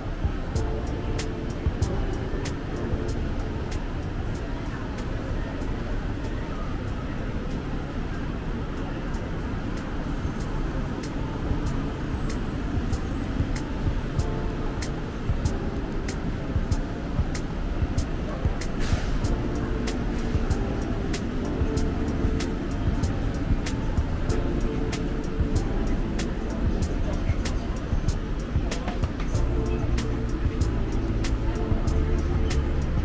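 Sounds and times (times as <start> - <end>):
background music with ticking beat: 0.0 - 5.2, 9.7 - 33.0
low rumble of mall: 0.0 - 33.0
voices in a shopping mall: 0.0 - 33.0.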